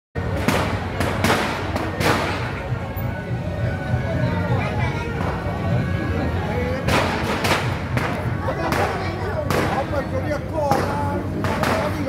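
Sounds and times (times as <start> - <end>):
firecrackers banging: 0.2 - 2.9, 6.8 - 12.0.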